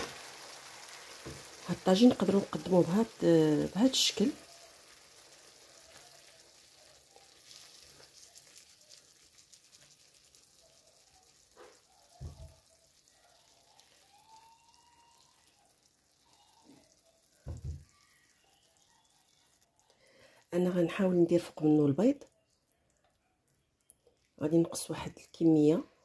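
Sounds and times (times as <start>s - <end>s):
spoon stirring in a pan: 0.0s - 20.3s
food sizzling in a pan: 0.0s - 22.2s.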